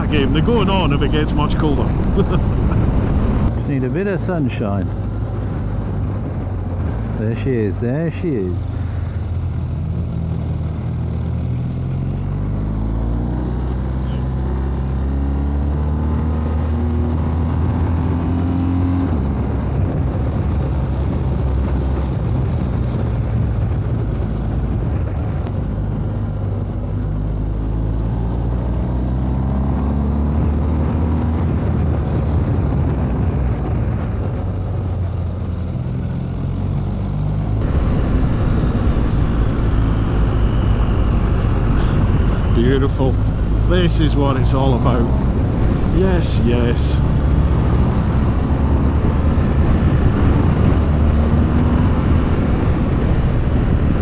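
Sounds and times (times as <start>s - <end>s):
wind and road hiss: 0.0s - 54.0s
motorcycle engine revving: 8.7s - 19.6s, 25.5s - 32.1s, 34.8s - 54.0s.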